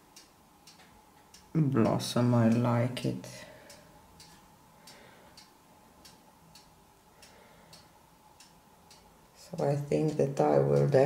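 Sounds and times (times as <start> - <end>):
faint regular ticking: 0.0 - 11.0.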